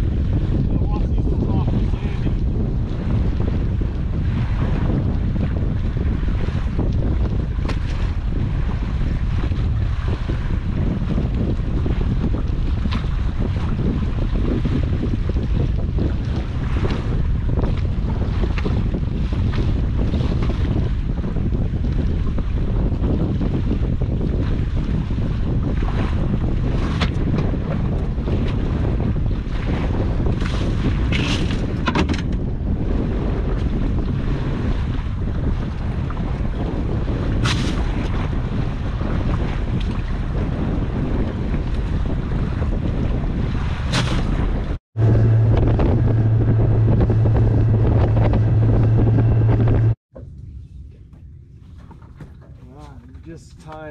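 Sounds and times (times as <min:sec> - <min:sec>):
steady low rumble: 0:00.0 - 0:53.9
wind buffeting microphone: 0:00.0 - 0:53.9.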